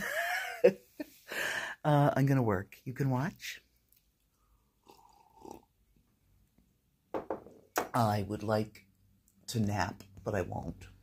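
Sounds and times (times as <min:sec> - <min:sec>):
sip from a mug: 0:04.3 - 0:05.7.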